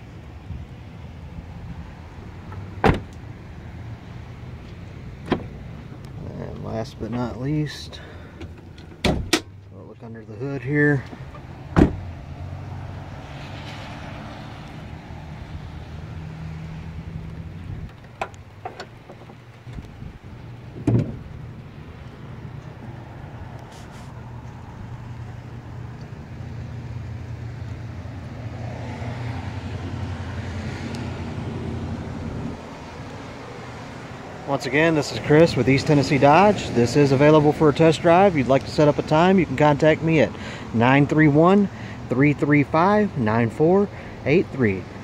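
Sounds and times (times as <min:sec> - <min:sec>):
car door shutting: 0:02.5 - 0:03.2, 0:05.2 - 0:06.0, 0:08.4 - 0:09.6, 0:11.1 - 0:12.1, 0:20.7 - 0:21.4
thump: 0:02.8 - 0:03.1, 0:09.0 - 0:09.5, 0:11.8 - 0:12.0, 0:20.8 - 0:21.2.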